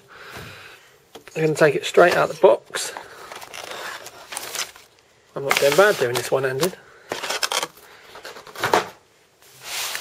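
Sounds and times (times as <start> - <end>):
handling noise of box: 2.0 - 9.0.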